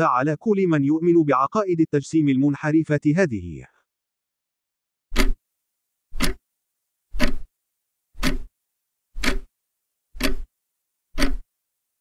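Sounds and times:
loud regular ticks: 0:06.1 - 0:06.4, 0:07.1 - 0:07.5, 0:08.2 - 0:08.5, 0:09.2 - 0:09.5, 0:10.1 - 0:10.5, 0:11.1 - 0:11.5.

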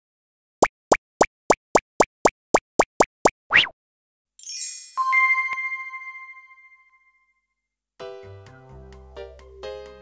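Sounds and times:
cartoon pops: 0:00.6 - 0:03.8.

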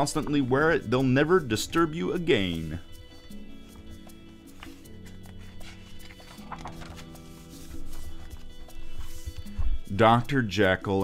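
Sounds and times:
soft background music: 0:00.0 - 0:11.0
book pages turning: 0:01.8 - 0:10.0.

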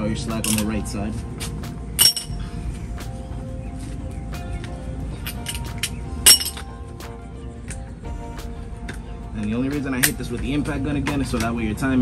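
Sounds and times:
background music: 0:00.0 - 0:12.0
metal tools clinking: 0:00.4 - 0:02.4, 0:05.2 - 0:06.7.

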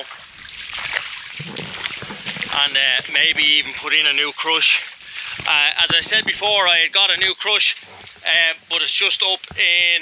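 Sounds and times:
boots splashing on wet ground: 0:00.0 - 0:08.4.

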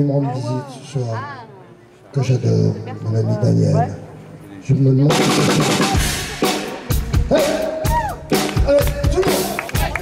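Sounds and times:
bass drum and cymbal hits: 0:05.1 - 0:09.6.

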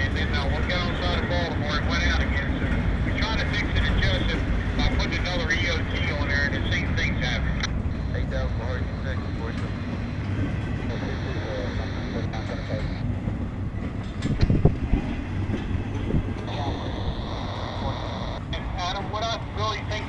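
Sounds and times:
steel wheels rumbling on rail: 0:00.0 - 0:20.0.

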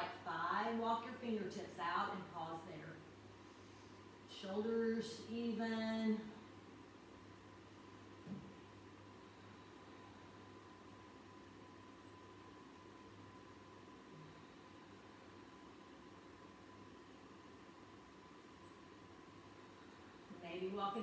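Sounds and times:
faint steady hum and hiss: 0:00.0 - 0:21.0.

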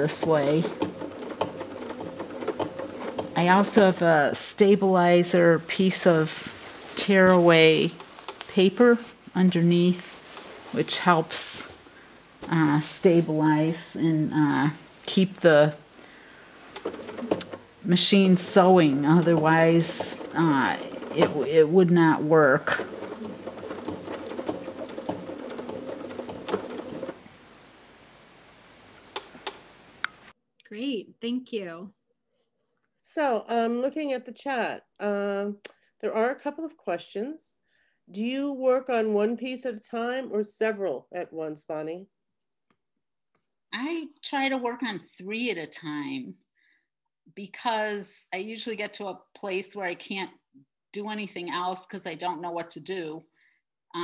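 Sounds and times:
sewing machine stitching: 0:00.0 - 0:06.2, 0:14.0 - 0:27.3.

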